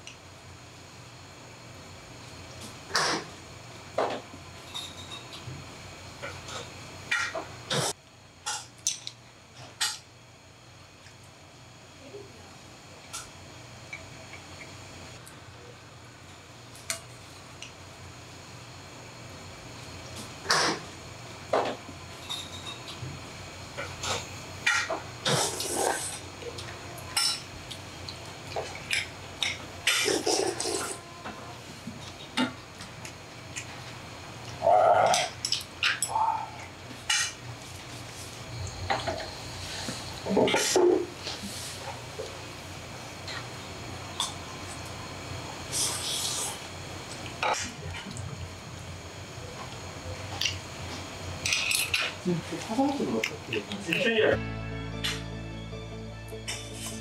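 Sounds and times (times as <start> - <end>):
eating sounds: 23.8 - 31.0, 34.4 - 36.8.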